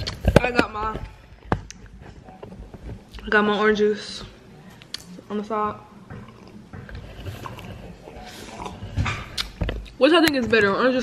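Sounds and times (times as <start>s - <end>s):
person gulping and swallowing: 6.2s - 10.0s.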